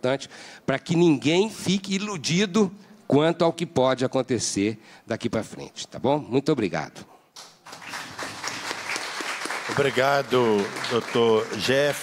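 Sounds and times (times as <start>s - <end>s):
applause: 7.6s - 12.0s.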